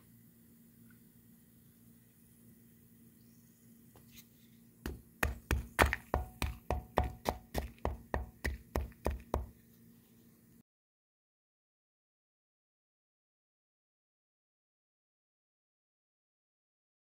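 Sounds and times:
stick pounding mortar lumps: 0:04.9 - 0:09.5.

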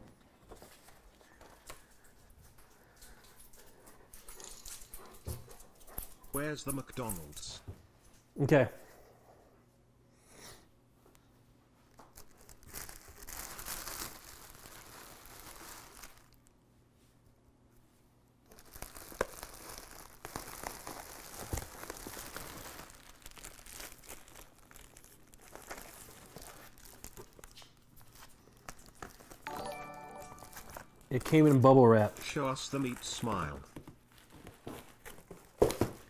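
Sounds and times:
bubble wrap crinkling: 0:11.9 - 0:16.6, 0:18.4 - 0:36.0
plastic sharp crackles: 0:12.1 - 0:16.4, 0:18.5 - 0:29.5.

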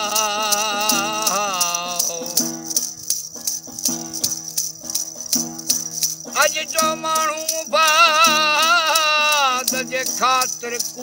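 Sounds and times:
plucked gourd lute: 0:00.0 - 0:11.0
rattle-like percussion strokes: 0:00.0 - 0:11.0.

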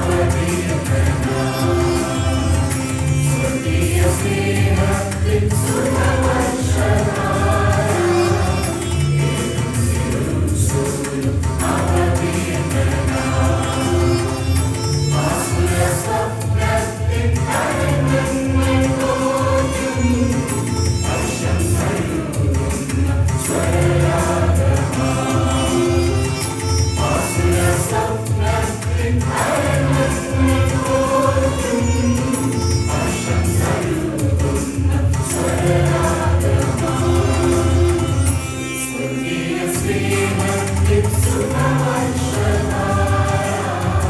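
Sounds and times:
mixed choir singing: 0:00.0 - 0:44.0.

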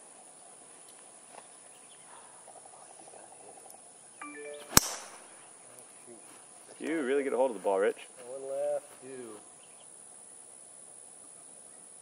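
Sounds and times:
golf driver striking ball: 0:04.7 - 0:05.3.

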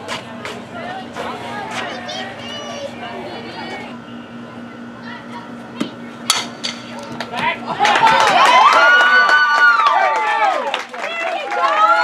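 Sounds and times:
people yelling and cheering: 0:00.0 - 0:06.0, 0:07.1 - 0:12.0.

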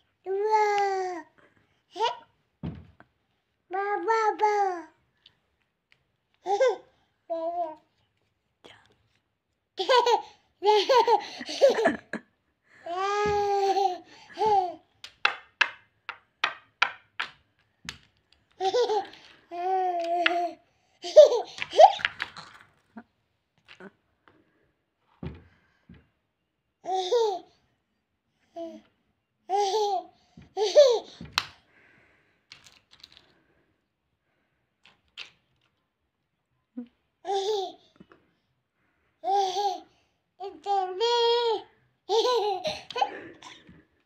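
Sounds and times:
toddler babbling and laughing: 0:00.2 - 0:02.3, 0:03.7 - 0:05.0, 0:12.9 - 0:14.9, 0:18.6 - 0:22.1, 0:39.2 - 0:43.5.

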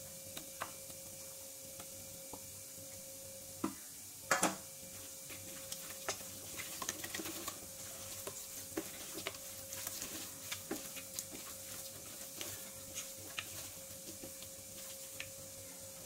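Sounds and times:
wet squelches of mixing meat: 0:04.8 - 0:16.0.

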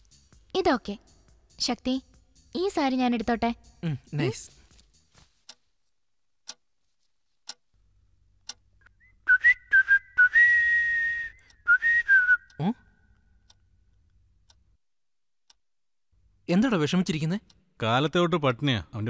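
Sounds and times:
wall clock ticking: 0:05.4 - 0:05.7, 0:06.4 - 0:06.7, 0:07.4 - 0:07.7, 0:08.4 - 0:08.7, 0:14.4 - 0:14.7
person whistling a tune: 0:09.0 - 0:12.7.

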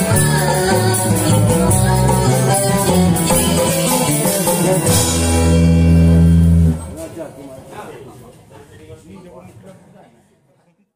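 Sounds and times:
live band chord: 0:00.0 - 0:07.1.

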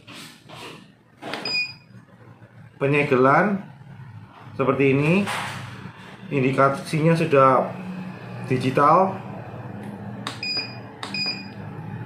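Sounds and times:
short electronic beep: 0:01.4 - 0:01.9, 0:10.4 - 0:11.6.

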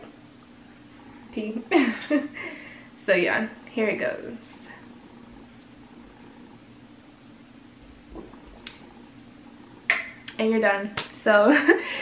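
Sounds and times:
room hiss: 0:00.0 - 0:12.0.

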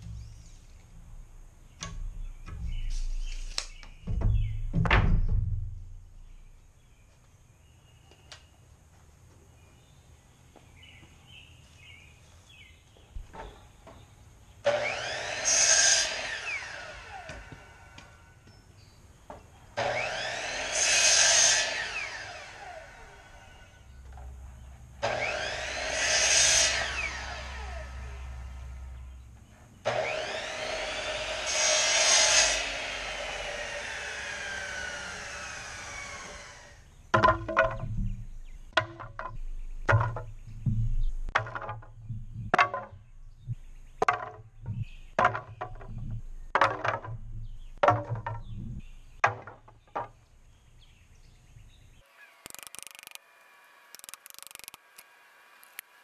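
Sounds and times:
wooden boards knocking together: 0:01.8 - 0:06.0, 0:37.1 - 0:50.3.

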